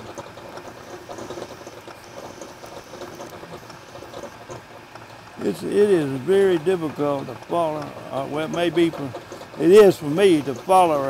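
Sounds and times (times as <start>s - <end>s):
lathe cutting metal: 0.0s - 11.0s.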